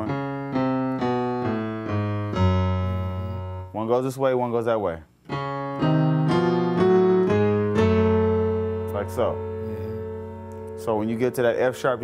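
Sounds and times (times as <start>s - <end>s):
piano chords: 0.0s - 3.8s, 5.2s - 12.0s.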